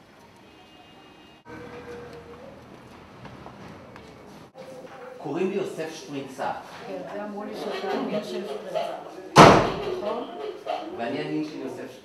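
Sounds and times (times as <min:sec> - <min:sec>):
loud bang: 0:09.4 - 0:10.2.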